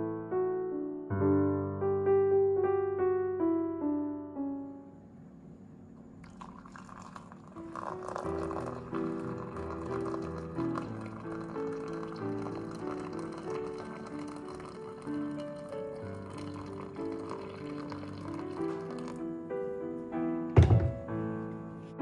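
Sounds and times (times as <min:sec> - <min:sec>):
background music melody: 0:00.0 - 0:05.4, 0:07.4 - 0:22.0
water pouring into a glass mug: 0:06.2 - 0:19.2.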